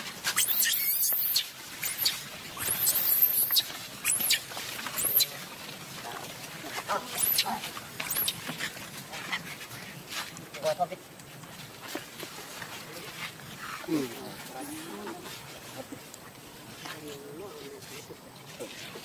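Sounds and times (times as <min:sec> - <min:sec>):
baby monkey screaming: 0:00.4 - 0:04.4, 0:05.0 - 0:05.2, 0:07.1 - 0:07.5, 0:08.1 - 0:08.4.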